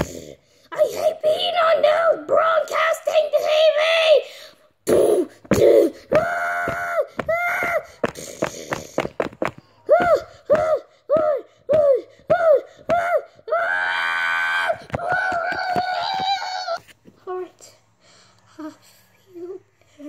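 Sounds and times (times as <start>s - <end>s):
child screaming: 4.9s - 8.0s, 9.8s - 16.8s
bumps: 4.9s - 16.8s
child making fight noises: 4.9s - 16.8s.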